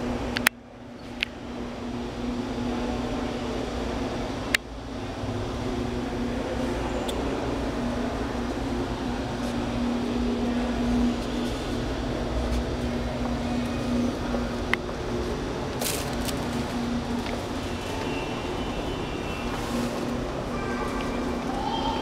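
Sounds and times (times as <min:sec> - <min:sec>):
mechanical hum: 0:00.0 - 0:22.0.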